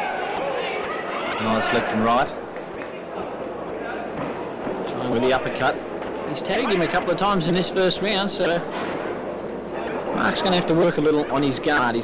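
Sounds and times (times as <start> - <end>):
crowd murmur in a hall: 0.0 - 11.6.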